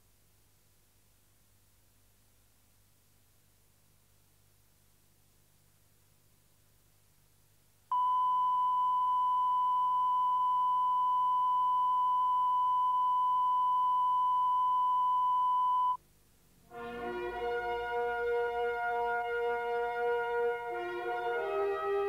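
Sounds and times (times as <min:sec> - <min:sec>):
faint background hum: 0:00.0 - 0:21.5
music: 0:16.7 - 0:22.0.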